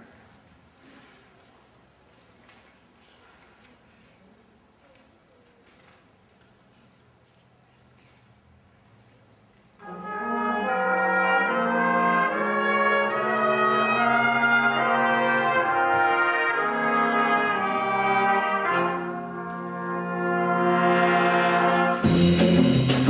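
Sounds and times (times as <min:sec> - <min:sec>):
horn section playing held chords: 0:09.8 - 0:23.0.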